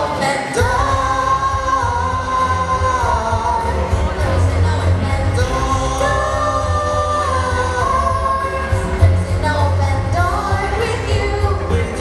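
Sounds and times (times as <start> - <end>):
backing track with bass line: 0.0 - 12.0
woman singing into microphone: 0.0 - 12.0.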